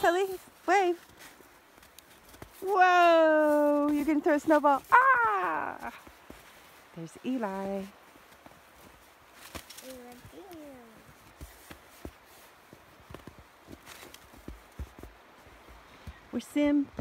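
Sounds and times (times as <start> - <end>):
footsteps crunching in snow: 0.0 - 15.8.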